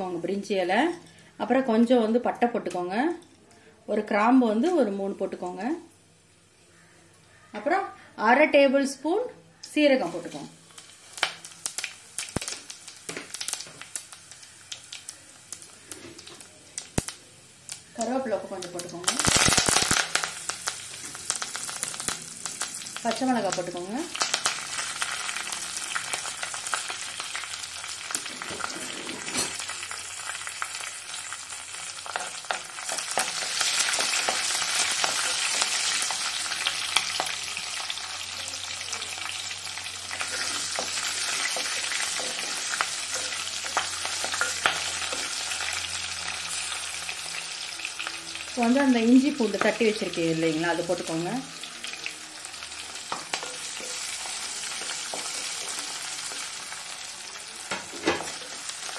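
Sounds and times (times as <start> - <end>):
spices sizzling in hot oil: 0.0 - 3.3, 3.9 - 58.9.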